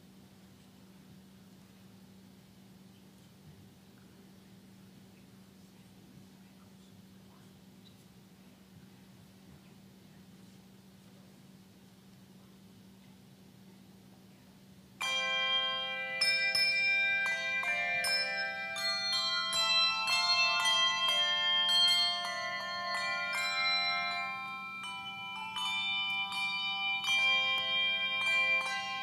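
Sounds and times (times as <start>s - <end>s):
handbell choir ringing: 15.0s - 29.0s.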